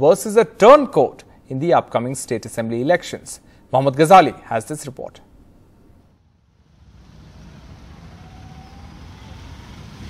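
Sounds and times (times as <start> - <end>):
road traffic rumble: 6.1 - 10.0.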